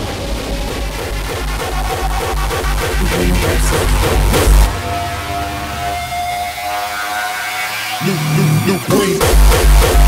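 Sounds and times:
pounding kick drum: 0:00.0 - 0:06.0, 0:09.2 - 0:10.0
held synth tone over noise: 0:01.6 - 0:08.8.

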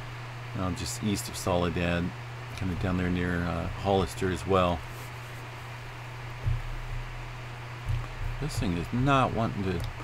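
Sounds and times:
microphone hum and hiss: 0:00.0 - 0:10.0
dull thumps: 0:06.2 - 0:10.0.

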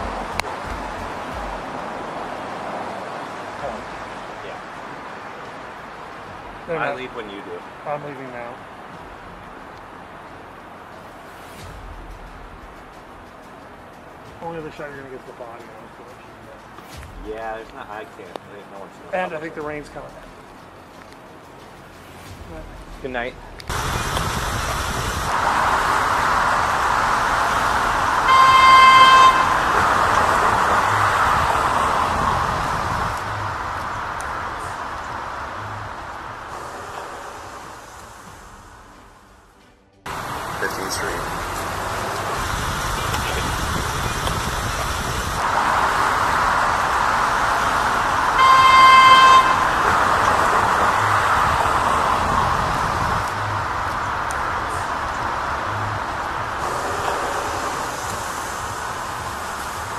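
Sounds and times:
city traffic noise: 0:00.0 - 0:59.9
vehicle horn blast: 0:26.3 - 0:32.3, 0:48.2 - 0:51.6.

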